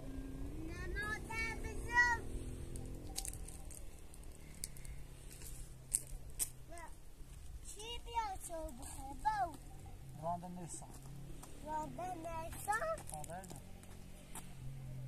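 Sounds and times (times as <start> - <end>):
child calling out: 0.8 - 2.3.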